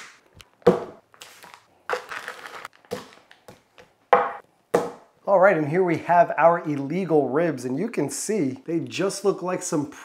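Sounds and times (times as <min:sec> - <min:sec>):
plastic bag crinkling and tearing: 0:01.1 - 0:03.4.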